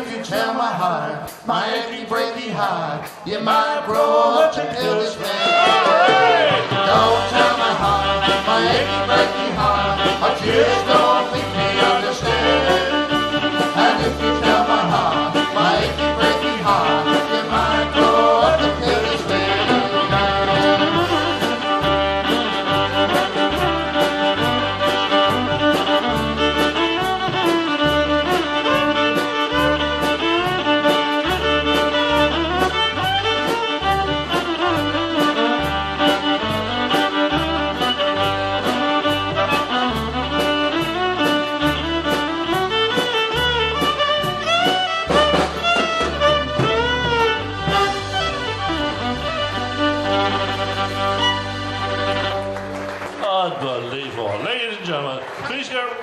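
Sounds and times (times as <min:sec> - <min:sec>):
drum kit beat: 0:00.0 - 0:53.2
accordion: 0:04.0 - 0:53.2
fiddle: 0:04.6 - 0:53.4.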